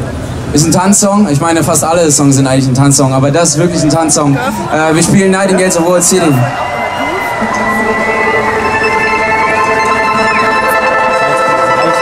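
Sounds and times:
live band playing: 3.6 - 12.0
sustained synthesizer chords: 3.6 - 12.0.

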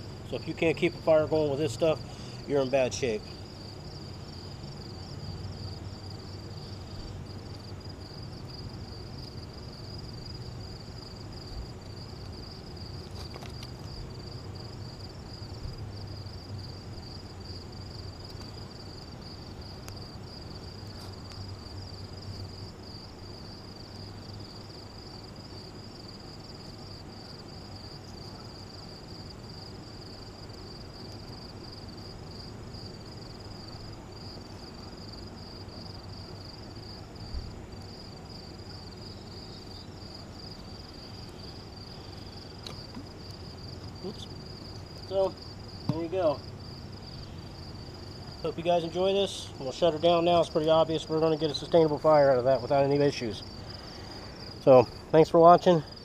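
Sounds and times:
crickets chirping: 0.0 - 56.0.

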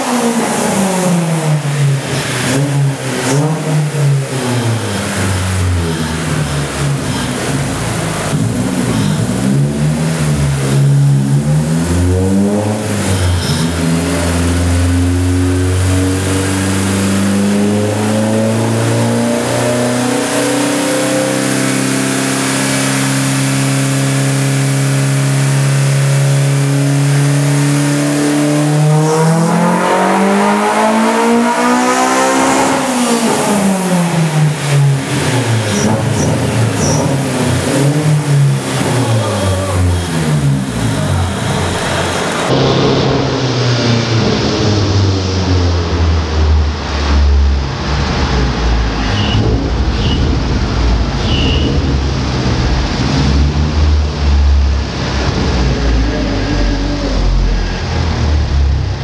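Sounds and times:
car engine revving on dyno: 0.0 - 59.0.

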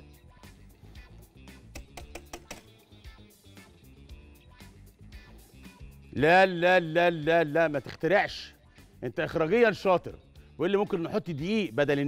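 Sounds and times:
faint background music: 0.0 - 12.0
whisk clicking against glass bowl: 1.8 - 2.7.

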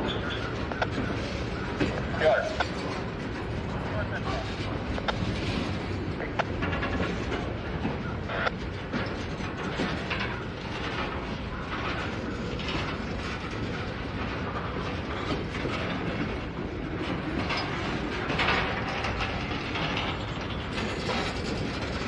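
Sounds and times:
steel wheels rumbling on rails: 0.0 - 22.0
wheel and coupler clanks: 0.0 - 22.0.

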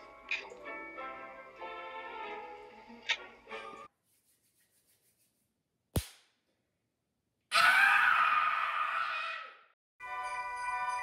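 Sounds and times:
hands slapping cheeks: 6.0 - 6.3
boy screaming: 7.5 - 9.6.

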